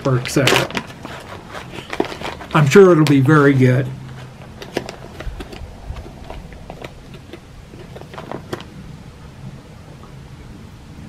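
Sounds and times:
pouch crinkling: 0.1s - 8.8s
plastic spoon scraping in pouch: 0.3s - 8.8s.

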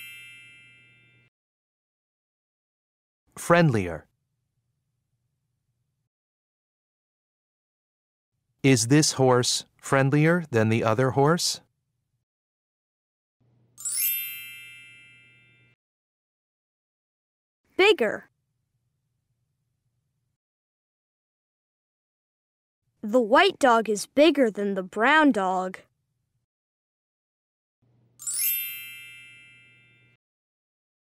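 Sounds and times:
bell-like chime ringing: 0.0s - 1.3s, 13.8s - 15.8s, 28.2s - 30.2s.

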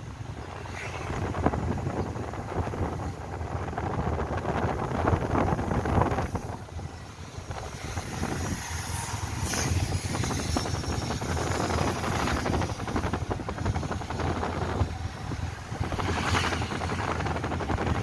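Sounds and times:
wind rushing over microphone: 0.0s - 18.0s.

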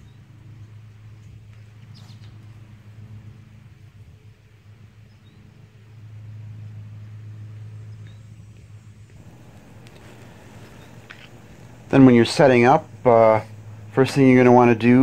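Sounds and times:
low mechanical hum: 0.0s - 15.0s.

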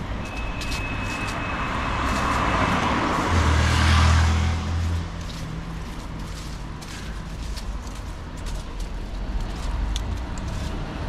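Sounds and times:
car passing by: 0.5s - 7.6s.

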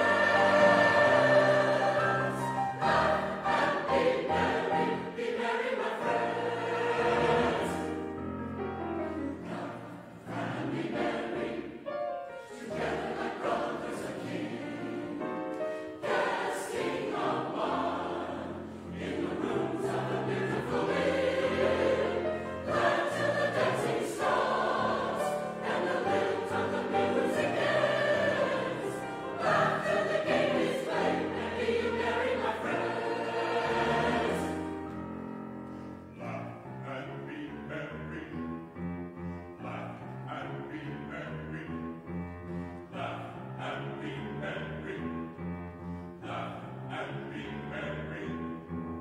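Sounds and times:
choir singing: 0.0s - 49.0s
piano accompaniment: 0.0s - 49.0s.

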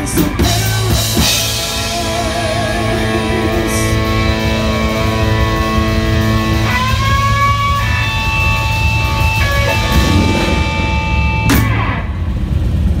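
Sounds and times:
live rock band: 0.0s - 12.4s
guitar note rising in pitch: 1.5s - 12.6s.

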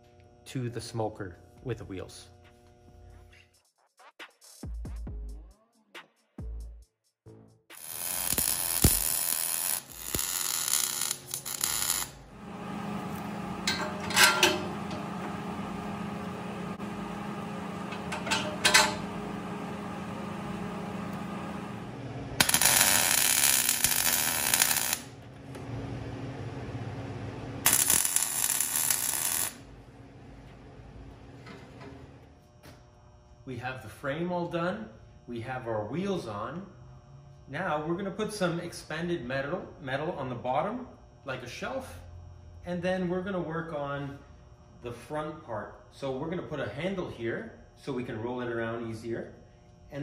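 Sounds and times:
welding crackle: 7.7s - 14.2s, 17.4s - 25.6s, 27.6s - 29.7s
drill boring through steel: 7.8s - 12.2s, 22.4s - 25.1s
motor hum: 8.2s - 33.4s.

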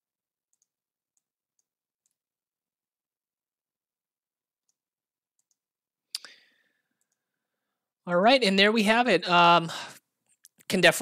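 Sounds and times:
computer mouse click: 0.5s - 2.2s, 5.4s - 6.4s, 7.0s - 7.2s.

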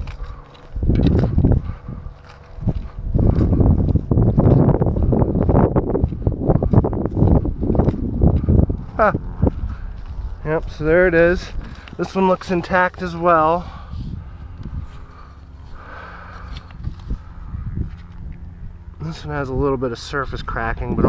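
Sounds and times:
footsteps through grass: 0.0s - 19.2s
wind buffeting microphone: 0.0s - 21.0s.

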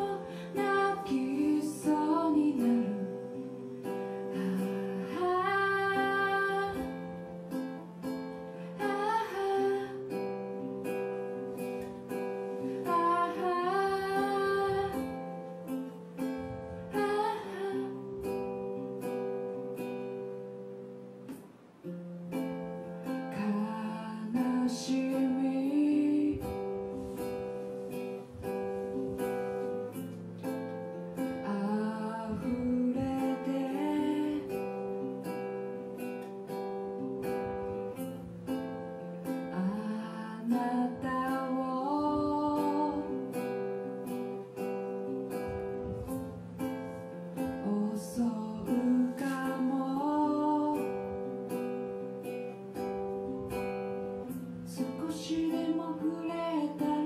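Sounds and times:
woman singing folk song: 0.0s - 20.9s, 21.8s - 57.0s
strummed acoustic guitar: 0.0s - 57.0s.

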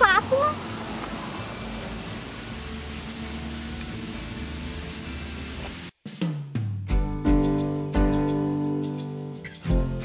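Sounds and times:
steady hiss: 0.6s - 5.9s.

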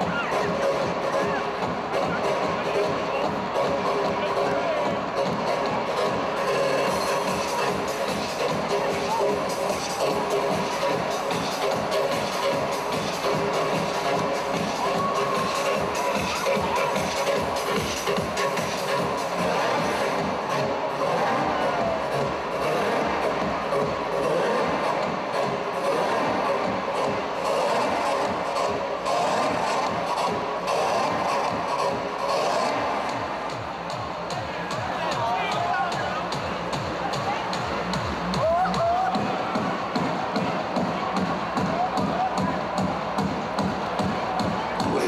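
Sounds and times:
crowd talking and cheering: 0.0s - 45.0s
loud dance music: 0.0s - 45.0s.

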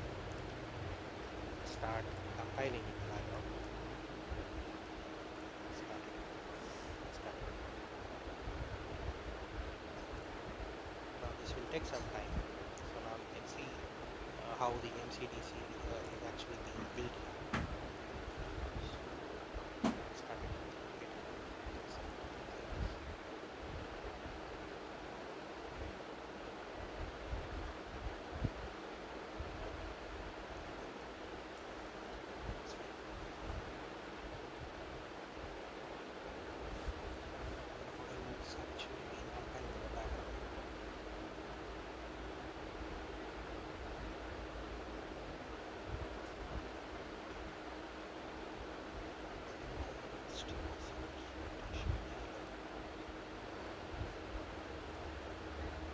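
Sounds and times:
faint steady hum: 0.0s - 55.9s
recording hiss: 0.0s - 55.9s.

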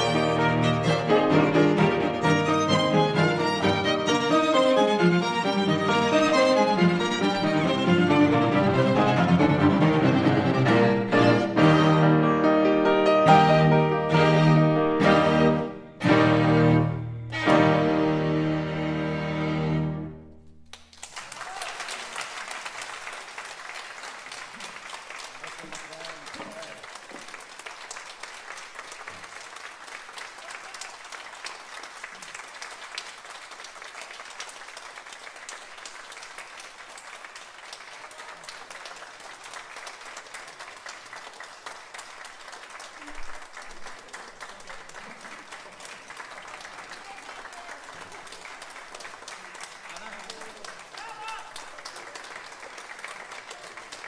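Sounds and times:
audience applauding: 0.0s - 12.3s, 20.6s - 54.0s.

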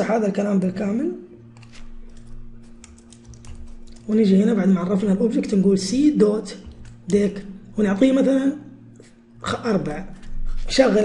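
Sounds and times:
faint electrical hum: 0.0s - 11.0s
computer keyboard keys clicking: 1.5s - 4.3s, 6.5s - 7.2s.

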